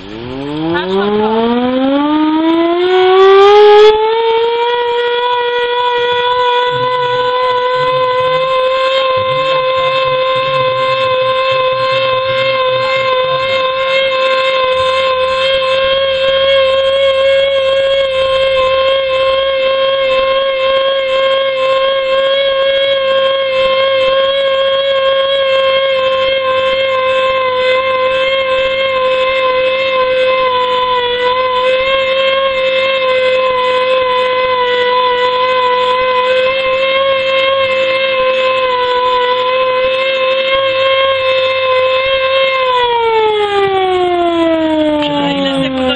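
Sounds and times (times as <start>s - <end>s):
pump engine high whine: 0.0s - 45.9s.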